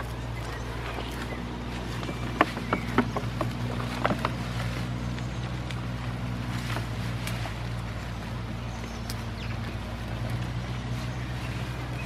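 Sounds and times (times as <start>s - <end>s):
goats tearing and chewing leaves: 0.0s - 12.0s
low mechanical hum: 0.0s - 12.0s.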